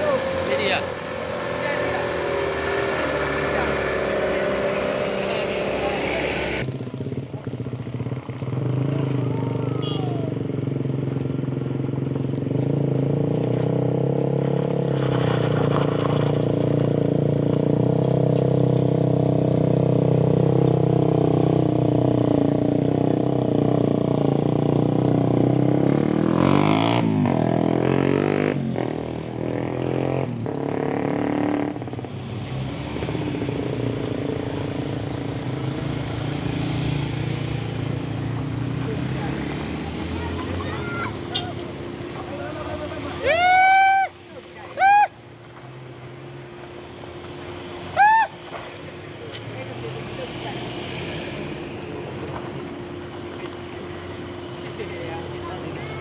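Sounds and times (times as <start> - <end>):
engine drone: 0.0 - 56.0
motorcycles passing: 0.0 - 56.0.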